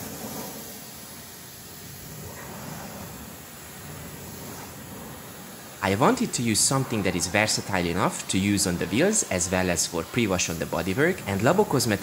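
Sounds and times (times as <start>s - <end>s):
pressure washer spray hissing: 0.0s - 12.0s.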